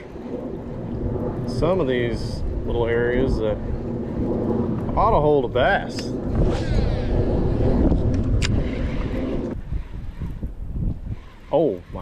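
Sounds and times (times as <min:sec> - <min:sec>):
wind rumbling on microphone: 0:00.0 - 0:12.0
fishing reel spool spinning: 0:07.3 - 0:12.0.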